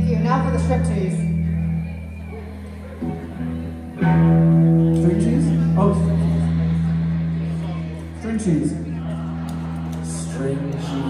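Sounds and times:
electric guitar and bass chord: 0:00.0 - 0:09.9.

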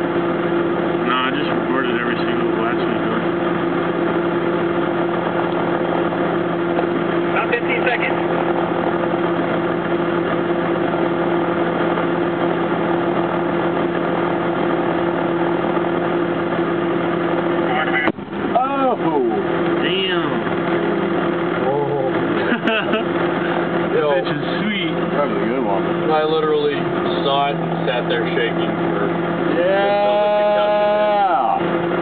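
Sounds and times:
military vehicle engine running: 0:00.0 - 0:32.0
excited shouting: 0:29.5 - 0:31.6.

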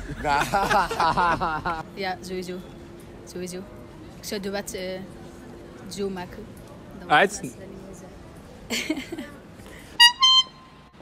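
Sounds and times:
horn tooting: 0:10.0 - 0:10.9.

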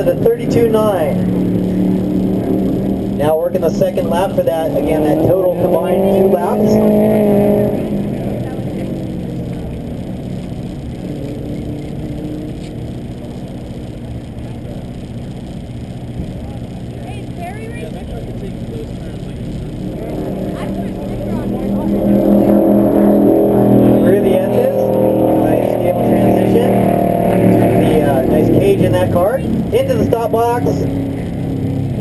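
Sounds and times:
car engine running: 0:00.0 - 0:32.0.

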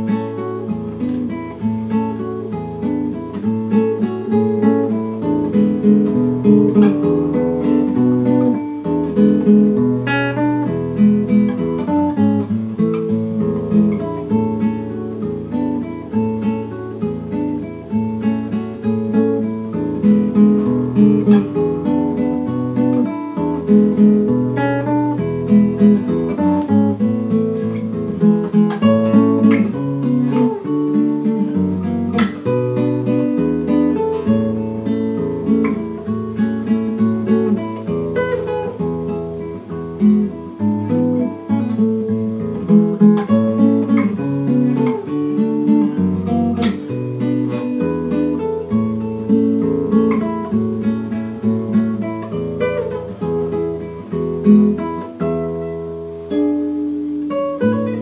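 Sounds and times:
acoustic guitar music: 0:00.0 - 0:58.0.

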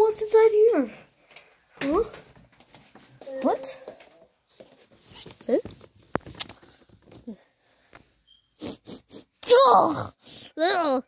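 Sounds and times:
person making questioning vocal sounds: 0:08.6 - 0:10.2.

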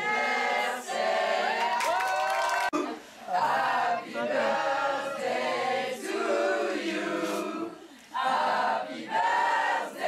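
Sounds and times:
group singing in chorus: 0:00.0 - 0:02.0, 0:02.7 - 0:10.0.

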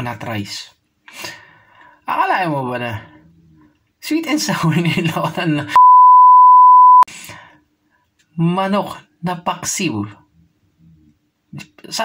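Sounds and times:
censor bleep: 0:05.8 - 0:07.1.

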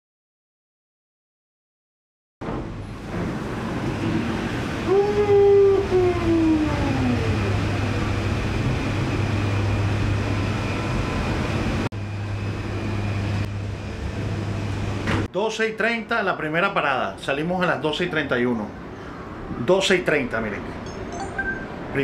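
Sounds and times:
cable car mechanical hum and rumble: 0:02.4 - 0:15.3
falling mechanical whine: 0:02.5 - 0:15.3.

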